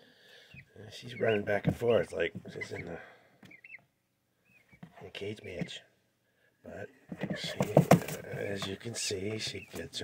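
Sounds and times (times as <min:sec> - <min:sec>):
chick peeping: 0:00.4 - 0:05.8, 0:07.2 - 0:09.9.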